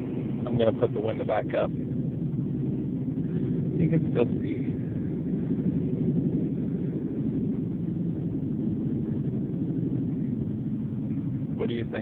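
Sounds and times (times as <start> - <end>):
car road and engine noise: 0.0 - 12.0.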